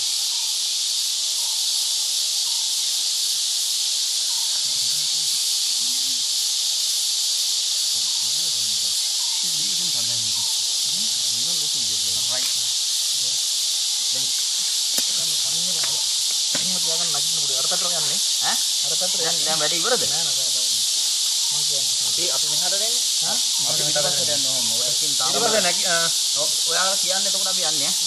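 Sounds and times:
insects droning: 0.0s - 28.0s
men murmuring: 9.4s - 12.6s, 18.8s - 20.8s, 23.3s - 26.6s.

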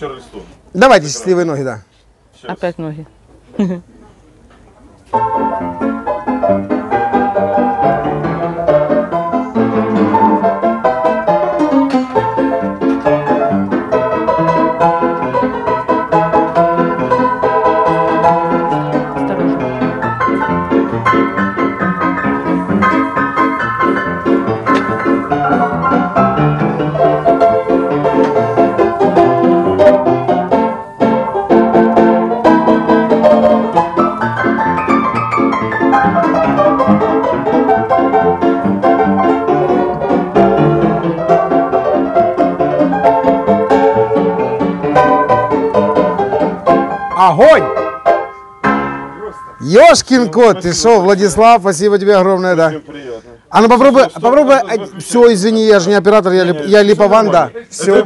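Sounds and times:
upright piano playing: 5.1s - 52.8s, 53.5s - 58.0s.

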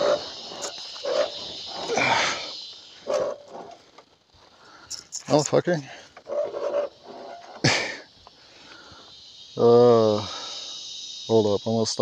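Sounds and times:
background hiss: 0.0s - 12.0s
man laughing: 7.6s - 8.1s.

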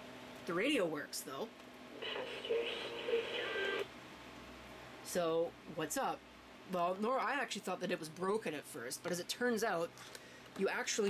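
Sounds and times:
small radio speaker playing: 1.9s - 3.9s.

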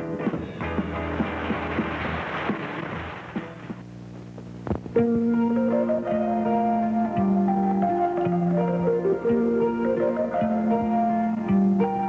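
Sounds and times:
music with long held notes: 0.0s - 3.7s, 4.9s - 12.0s
live rock band: 0.0s - 3.8s.

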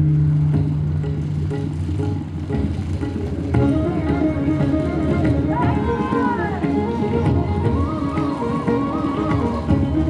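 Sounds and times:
dance-drama music with drone: 0.0s - 10.0s.

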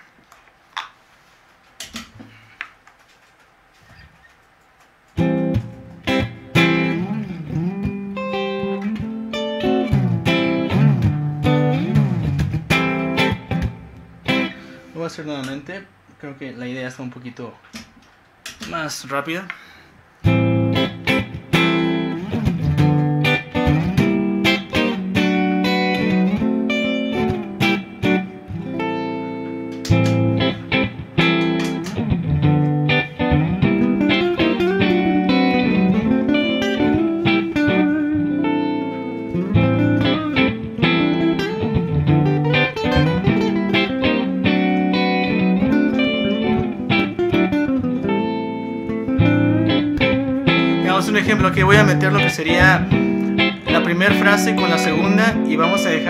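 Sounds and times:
looped guitar chords: 5.1s - 15.0s, 20.2s - 56.0s
electric guitar melodic phrases: 5.2s - 15.0s, 20.2s - 56.0s.

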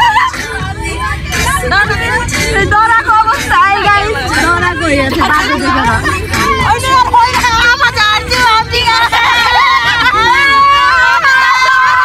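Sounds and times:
women talking and exclaiming: 0.0s - 12.0s.

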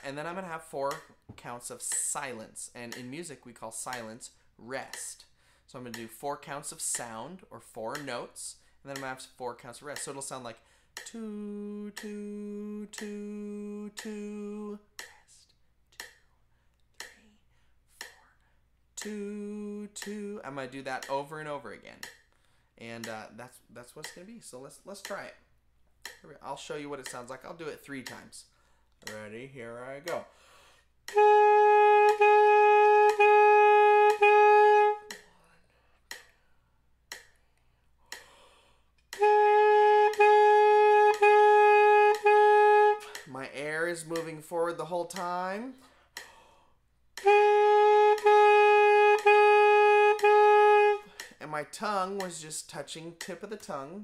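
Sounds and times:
saxophone tongued notes: 0.0s - 10.4s, 11.0s - 15.3s, 19.0s - 22.2s, 31.0s - 35.4s, 39.1s - 46.3s, 47.2s - 54.0s
metronome clicks: 0.0s - 15.3s, 15.9s - 16.3s, 17.0s - 17.3s, 18.0s - 18.3s, 19.0s - 25.4s, 26.0s - 30.4s, 31.0s - 35.4s, 36.0s - 36.3s, 37.1s - 37.4s, 38.1s - 46.5s, 47.1s - 54.0s.

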